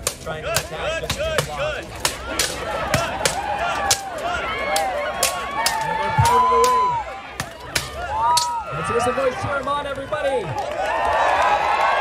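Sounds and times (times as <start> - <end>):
spectators shouting: 0.0 - 12.0
swords clashing on metal: 7.4 - 8.6.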